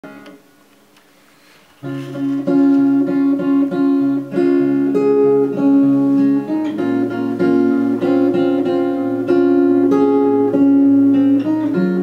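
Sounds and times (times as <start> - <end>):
acoustic guitar notes ringing: 0.0 - 0.6, 1.8 - 12.0.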